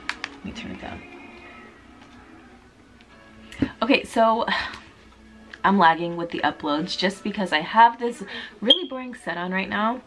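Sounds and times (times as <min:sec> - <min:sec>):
faint background music: 0:00.0 - 0:10.0
television sound: 0:00.0 - 0:10.0.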